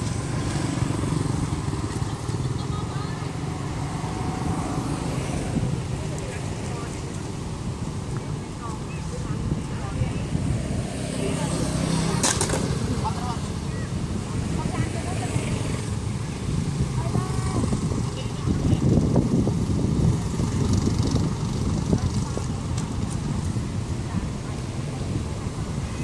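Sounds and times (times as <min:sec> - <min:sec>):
faint voices: 0:00.0 - 0:26.0.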